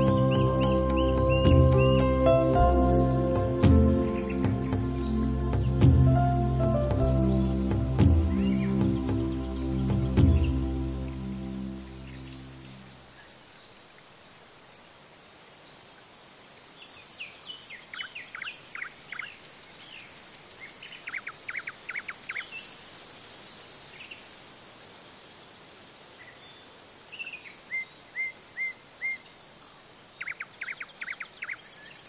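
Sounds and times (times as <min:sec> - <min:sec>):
small birds chirping and trilling: 0:00.0 - 0:13.8, 0:15.6 - 0:24.8, 0:26.2 - 0:32.0
steady background hiss: 0:02.0 - 0:32.0.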